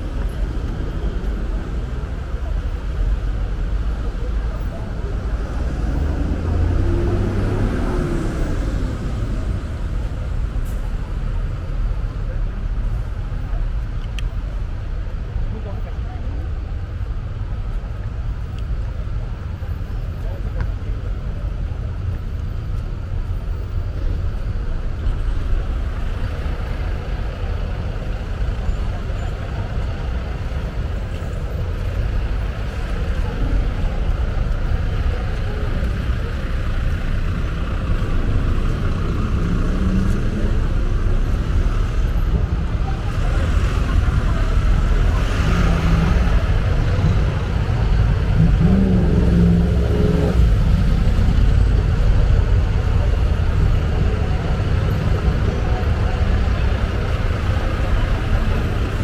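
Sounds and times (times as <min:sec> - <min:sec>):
bus engine rumbling: 0:00.0 - 0:59.0
passers-by talking: 0:00.0 - 0:59.0
street traffic: 0:00.0 - 0:59.0.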